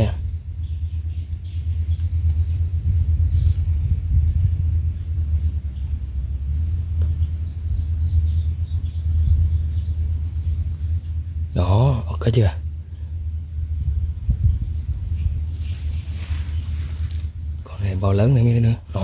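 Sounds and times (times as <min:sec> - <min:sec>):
wind on microphone: 0:00.0 - 0:11.4, 0:13.4 - 0:17.7.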